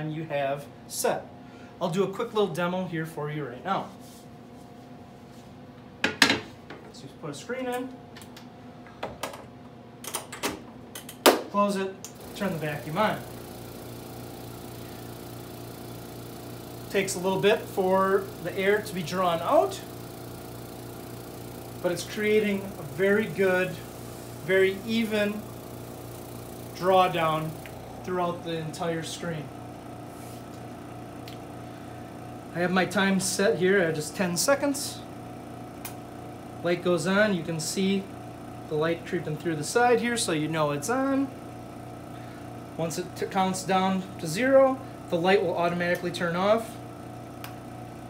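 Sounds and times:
vacuum pump humming: 12.0 - 48.0.

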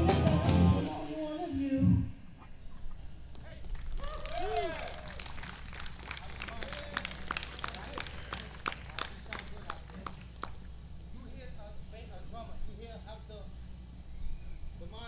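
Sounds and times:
rock band guitar chord: 0.0 - 1.5.

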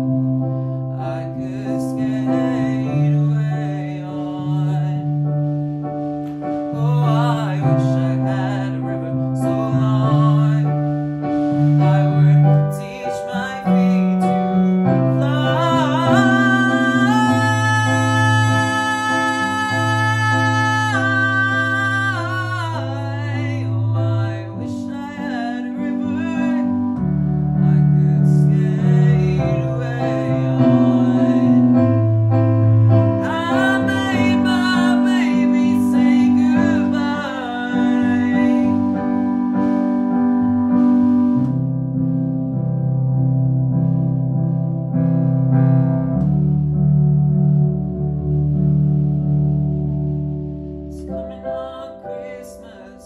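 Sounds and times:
keyboard playing slow ballad: 0.0 - 53.0
person singing wordless runs: 6.5 - 32.2, 32.8 - 40.1, 50.9 - 53.0.

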